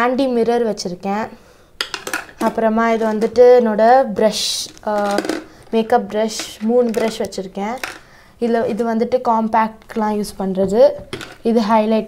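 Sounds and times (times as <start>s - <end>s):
woman talking: 2.4s - 12.0s.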